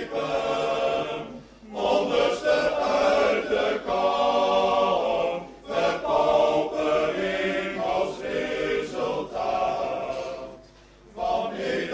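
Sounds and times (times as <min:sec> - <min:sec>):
choir singing: 0:00.0 - 0:11.9.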